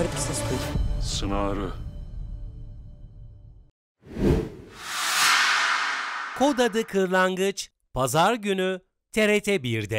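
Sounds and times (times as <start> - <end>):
noisy swoosh: 4.1 - 7.3
low hit: 4.8 - 7.2.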